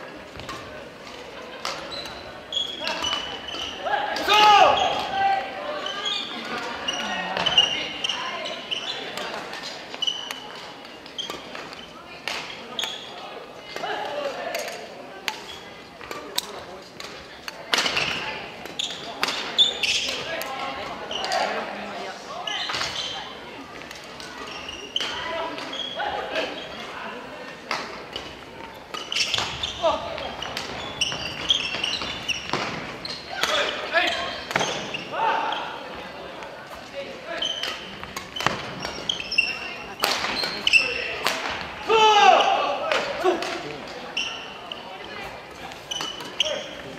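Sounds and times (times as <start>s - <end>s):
court shoes squeaking: 0.0s - 46.9s
rackets hitting shuttlecock: 0.3s - 4.3s, 9.1s - 13.0s, 13.7s - 21.6s, 27.6s - 35.0s, 37.5s - 42.0s
players shouting: 2.8s - 5.9s, 40.7s - 43.8s.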